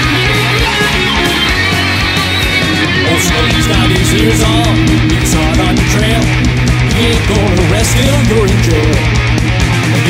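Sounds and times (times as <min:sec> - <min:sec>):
distorted electric guitar: 0:00.0 - 0:10.0
metal band playing: 0:00.0 - 0:10.0.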